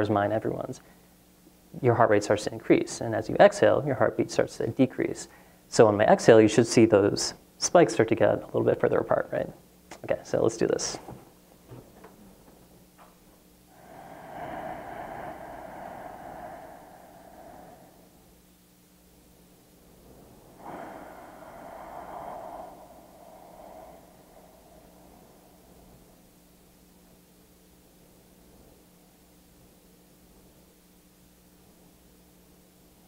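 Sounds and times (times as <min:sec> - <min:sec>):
man breathing slowly and deeply: 0:13.7 - 0:18.5, 0:20.1 - 0:26.7.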